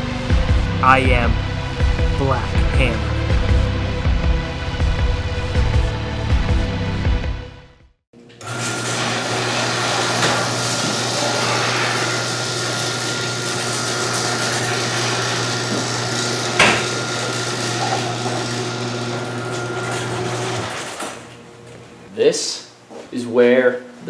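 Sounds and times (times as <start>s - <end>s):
garage door opener running: 8.2s - 21.8s.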